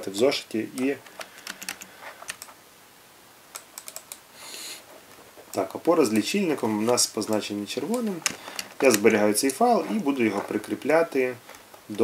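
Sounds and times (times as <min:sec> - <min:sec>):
typing on computer keyboard: 0:01.2 - 0:02.5, 0:03.6 - 0:04.2.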